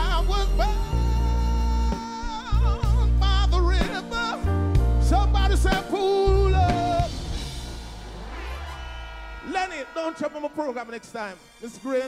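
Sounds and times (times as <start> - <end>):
live band holding a chord: 5.0 - 12.0.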